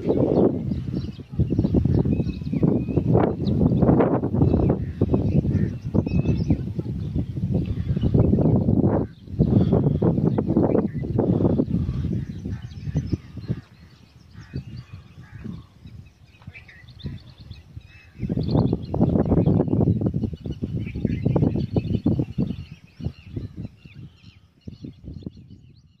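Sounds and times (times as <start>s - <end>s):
birds chirping and calling: 0.0s - 26.0s.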